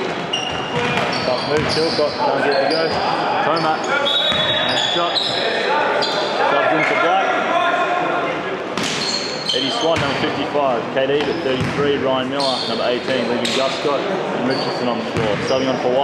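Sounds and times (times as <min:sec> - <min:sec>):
sneakers squeaking: 0:00.0 - 0:07.0, 0:08.8 - 0:10.4, 0:11.1 - 0:13.8, 0:14.4 - 0:16.0
players calling out: 0:00.2 - 0:16.0
basketball bouncing: 0:00.5 - 0:01.8, 0:11.6 - 0:11.8.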